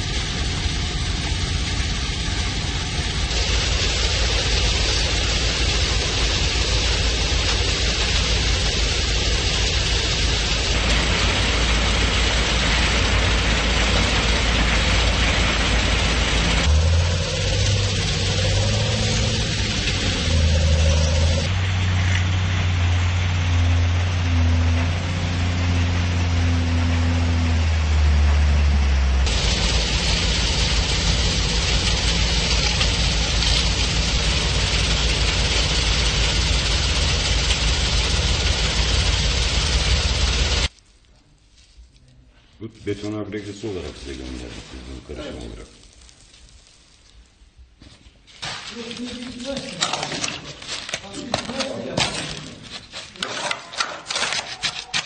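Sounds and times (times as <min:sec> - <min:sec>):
engine-driven machine running: 0:00.0 - 0:40.7.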